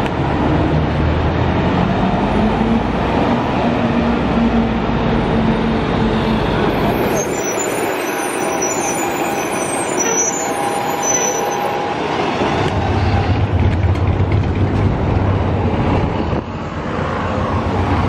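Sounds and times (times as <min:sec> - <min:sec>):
bus engine drone: 0:00.0 - 0:18.0
bus passing with high whine: 0:00.0 - 0:18.0.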